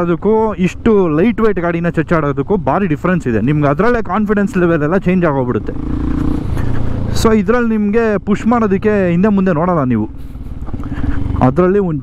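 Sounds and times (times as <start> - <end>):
man talking: 0.0 - 5.8, 7.1 - 10.1, 11.4 - 12.0
motorcycle engine running: 0.0 - 12.0.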